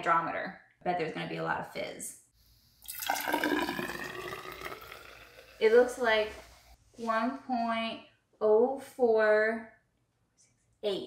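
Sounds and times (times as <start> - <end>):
fizzy liquid pouring and foaming: 2.8 - 6.6.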